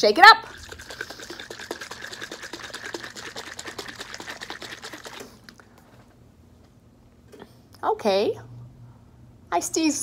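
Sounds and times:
liquid sloshing in shaken bottle: 0:00.4 - 0:05.8.

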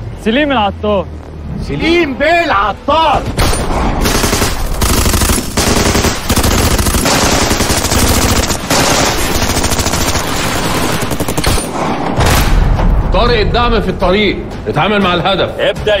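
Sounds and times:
rapid gunfire: 0:04.0 - 0:12.4.

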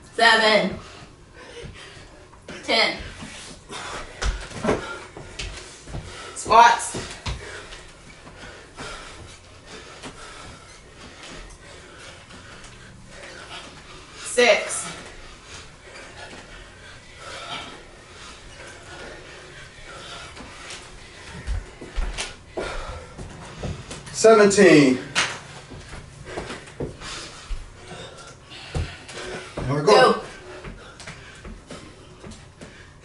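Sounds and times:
people panting: 0:00.7 - 0:24.2, 0:25.4 - 0:33.0.

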